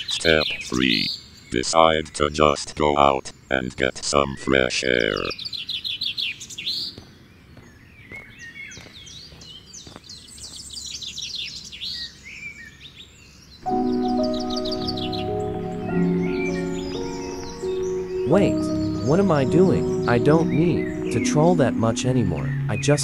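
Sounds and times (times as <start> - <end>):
birds chirping: 0.0 - 23.0
music with held chords: 13.7 - 23.0.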